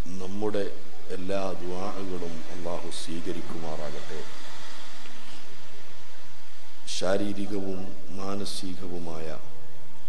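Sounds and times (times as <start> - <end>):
man preaching: 0.0 - 4.3, 6.9 - 9.5
steady hiss: 0.0 - 10.0.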